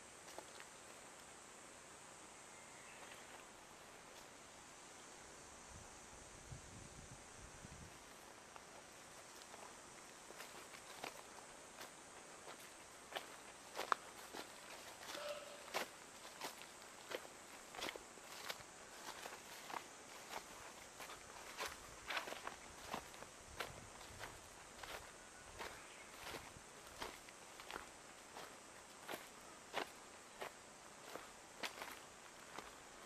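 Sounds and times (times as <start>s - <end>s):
footsteps on grass and dry leaves: 8.0s - 33.0s.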